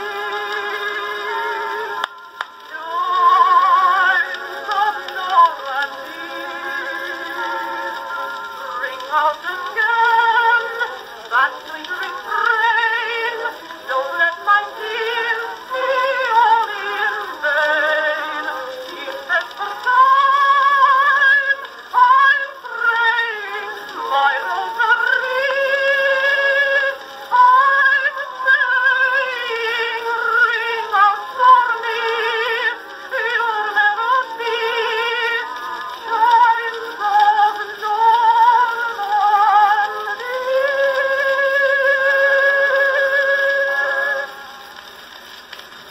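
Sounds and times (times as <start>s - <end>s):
woman singing on old phonograph: 0.0s - 45.9s.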